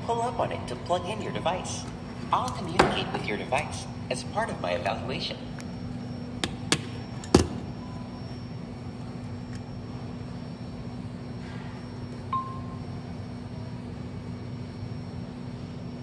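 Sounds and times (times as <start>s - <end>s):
kiosk humming: 0.0s - 16.0s.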